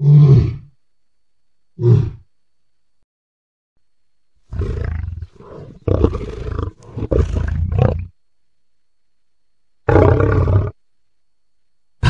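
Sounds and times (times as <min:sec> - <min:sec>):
deep dinosaur roar: 0:04.5 - 0:08.1, 0:09.9 - 0:10.8.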